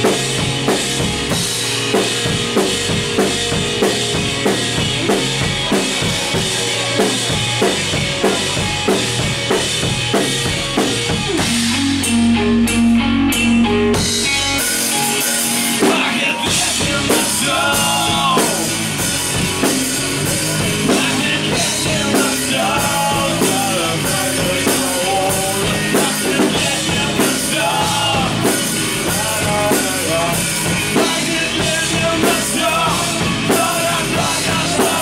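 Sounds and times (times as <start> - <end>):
drum kit beat: 0.0 - 35.0
electric guitar high bending notes: 0.0 - 35.0
punk rock band playing: 0.0 - 35.0.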